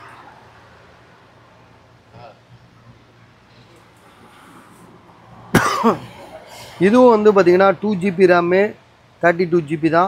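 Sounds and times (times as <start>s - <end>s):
person coughing sharply: 5.5s - 6.4s
man speaking: 6.8s - 10.0s.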